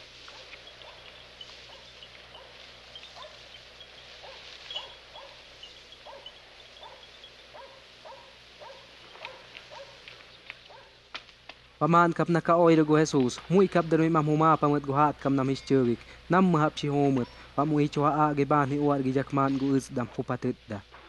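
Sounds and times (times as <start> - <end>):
dog barking faintly: 0.3 - 3.5, 4.2 - 10.1, 10.7 - 11.0
faint high chirps: 0.3 - 10.5.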